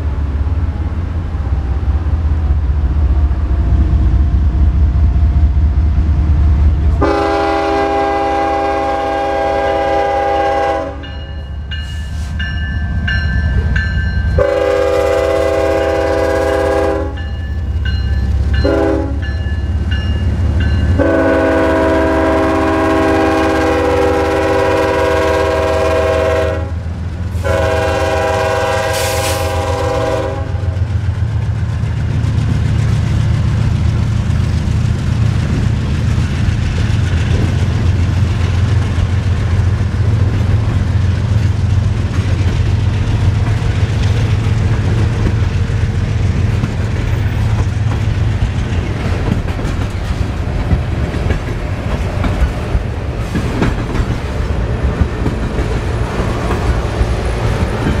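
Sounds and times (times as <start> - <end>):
locomotive engine rumble: 0.0 - 58.0
train wheels on rails: 0.0 - 58.0
locomotive air horn: 7.0 - 11.1, 14.4 - 17.2, 18.6 - 19.3, 21.0 - 26.8, 27.4 - 30.8
crossing bell dinging: 10.9 - 14.7, 17.0 - 21.4.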